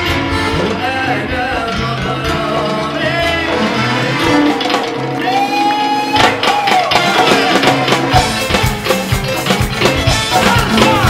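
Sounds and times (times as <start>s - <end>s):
live band music: 0.0s - 11.0s
crowd cheering: 3.8s - 8.4s, 9.6s - 11.0s.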